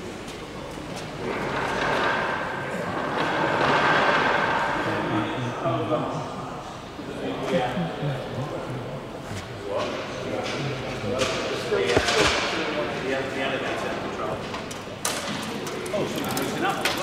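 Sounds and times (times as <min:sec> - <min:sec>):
men talking indistinctly: 0:04.7 - 0:14.7, 0:15.3 - 0:17.0.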